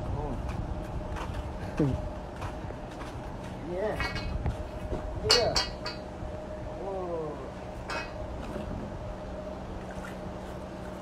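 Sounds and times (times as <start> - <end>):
faint steady hum: 0.0 - 11.0
metal stringer clinking: 5.2 - 6.1.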